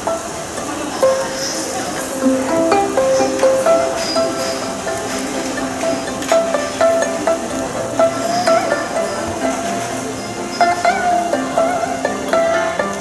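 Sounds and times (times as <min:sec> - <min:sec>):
plucked zither melody: 0:00.0 - 0:13.0.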